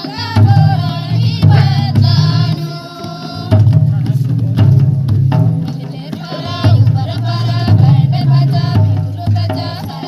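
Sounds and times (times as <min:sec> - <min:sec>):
women singing together: 0:00.0 - 0:03.8, 0:05.6 - 0:10.0
barrel drum beating: 0:00.0 - 0:10.0.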